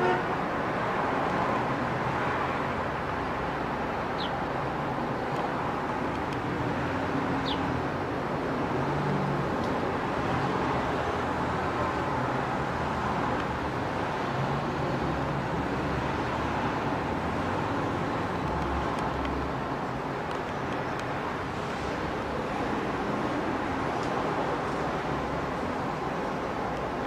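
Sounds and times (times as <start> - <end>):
car road and engine noise: 0.0 - 27.0.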